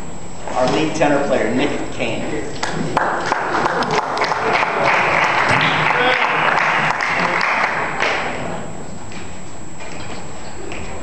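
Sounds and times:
audience applauding: 0:02.9 - 0:08.3.

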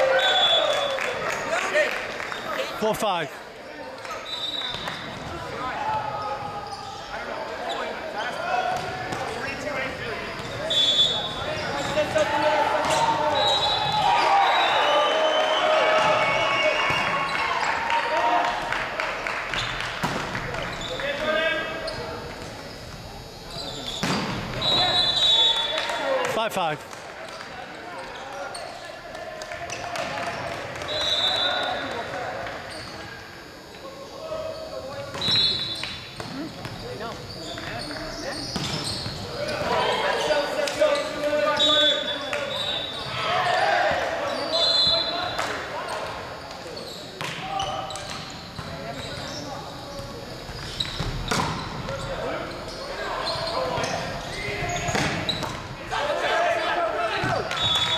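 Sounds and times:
players shouting: 0:07.7 - 0:18.8, 0:39.3 - 0:45.6, 0:52.8 - 0:57.9.

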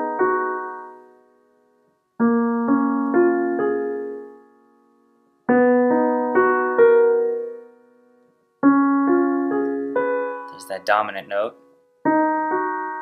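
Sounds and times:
piano chords: 0:00.0 - 0:13.0.

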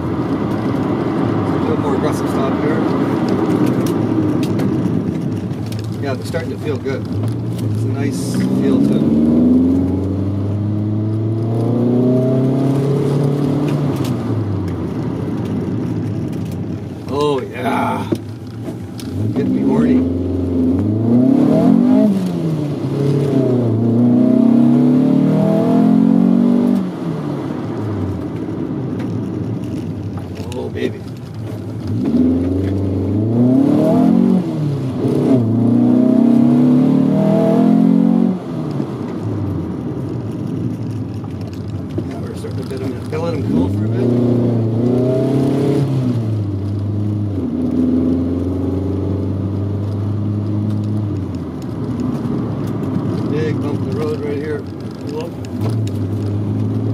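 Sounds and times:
car engine revving: 0:00.0 - 0:56.9.

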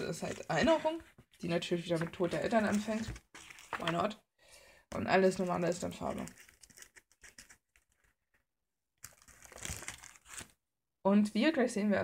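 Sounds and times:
plastic sheet protectors crinkling: 0:02.3 - 0:04.1, 0:05.3 - 0:08.2, 0:09.0 - 0:10.5.

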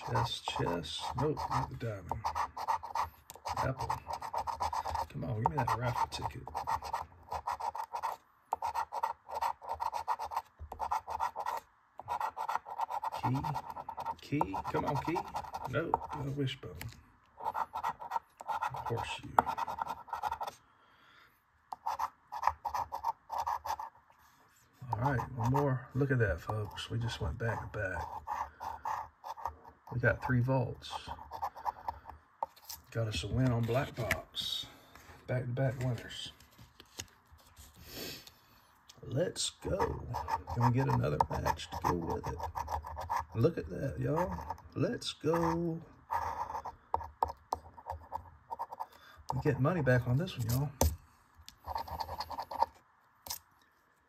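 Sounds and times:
coin scratching lottery ticket: 0:00.0 - 0:16.3, 0:17.4 - 0:20.5, 0:21.8 - 0:24.0, 0:24.9 - 0:25.6, 0:26.4 - 0:32.0, 0:39.6 - 0:44.7, 0:45.3 - 0:49.6, 0:51.6 - 0:52.7.

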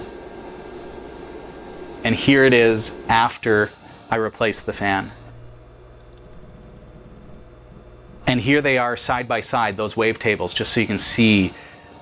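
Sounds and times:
fan and drives humming: 0:00.0 - 0:12.0.

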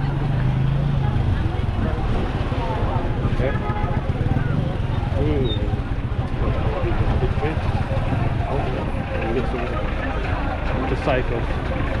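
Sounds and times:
many voices talking: 0:00.0 - 0:12.0
motorbike and car engines rumbling: 0:00.0 - 0:12.0.

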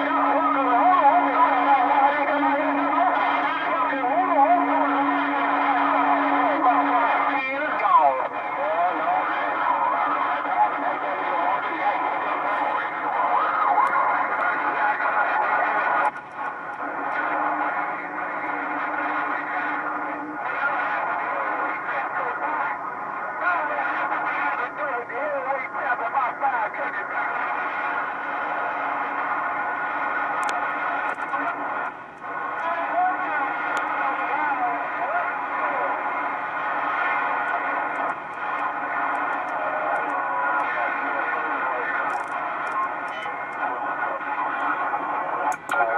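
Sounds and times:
garbled radio voices: 0:00.0 - 0:45.9
radio band hiss: 0:00.0 - 0:45.9
radio whistling tones: 0:00.0 - 0:45.9.

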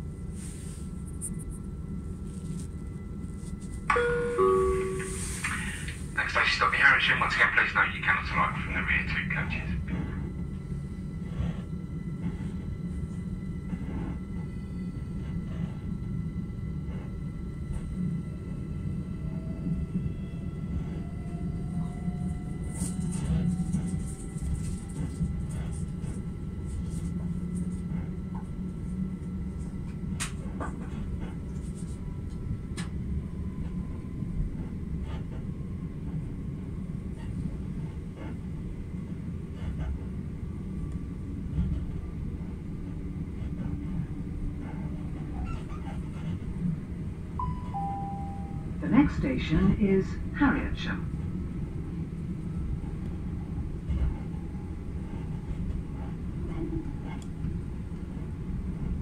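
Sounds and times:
train wheels rumbling on track: 0:00.0 - 0:47.4, 0:48.4 - 0:59.0.

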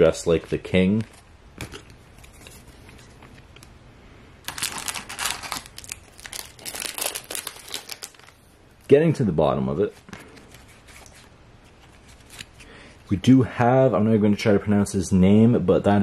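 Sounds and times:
foil wrapper crinkling and tearing: 0:04.4 - 0:08.4.

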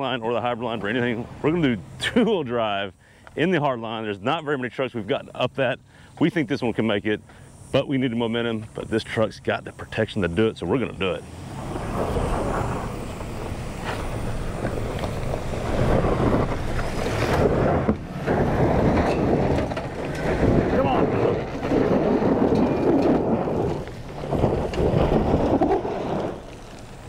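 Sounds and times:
tyres spinning on gravel: 0:00.0 - 0:27.0
wind buffeting microphone: 0:10.2 - 0:27.0
truck engine revving: 0:11.1 - 0:27.0.

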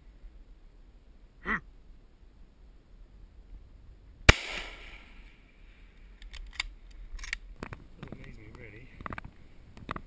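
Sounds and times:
rifle shot: 0:04.3 - 0:05.4.

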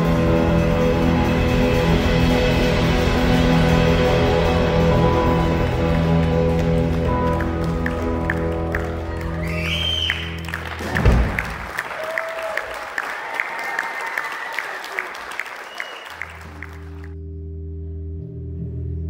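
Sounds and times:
electric band sustained chord: 0:00.0 - 0:09.4
audience applause: 0:04.9 - 0:17.2.

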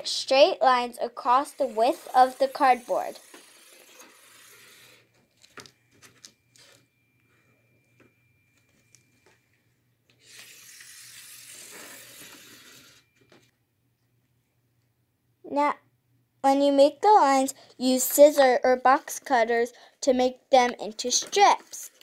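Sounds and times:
marker scratching on cardboard: 0:01.4 - 0:05.0.

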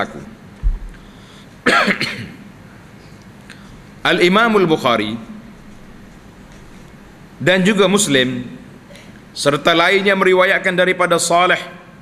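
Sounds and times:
low thud: 0:00.6 - 0:01.0
man coughing: 0:01.6 - 0:02.4.

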